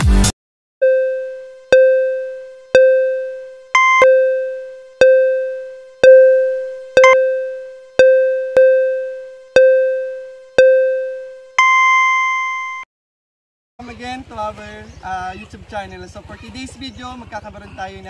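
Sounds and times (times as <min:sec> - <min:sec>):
higher electronic tone: 0:00.8 - 0:12.8
ringing electronic timer tone: 0:00.8 - 0:12.8.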